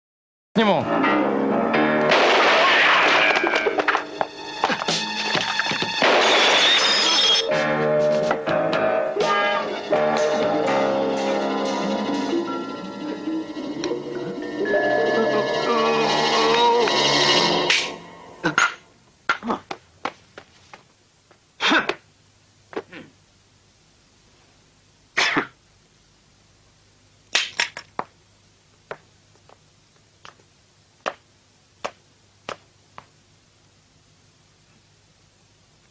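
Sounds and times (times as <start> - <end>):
film soundtrack music: 6.6 - 18.6.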